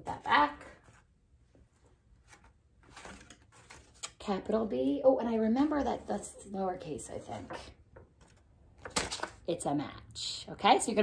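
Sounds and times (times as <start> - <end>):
paper plates tapping and rustling: 1.7 - 4.2, 7.2 - 9.5.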